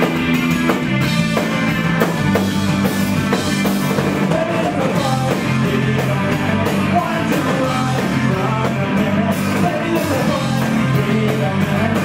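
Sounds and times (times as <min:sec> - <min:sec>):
drum kit with cymbal hits: 0:00.0 - 0:12.0
electric guitars: 0:00.0 - 0:12.0
person singing: 0:04.0 - 0:12.0.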